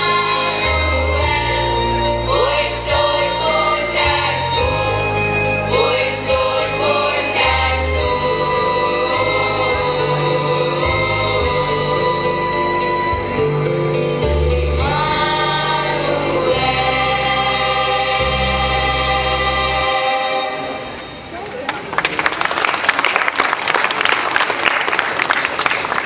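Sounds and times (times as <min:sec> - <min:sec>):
choir singing: 0:00.0 - 0:13.8, 0:14.4 - 0:21.2
low accompaniment notes: 0:00.0 - 0:21.3
audience applause: 0:21.4 - 0:26.0.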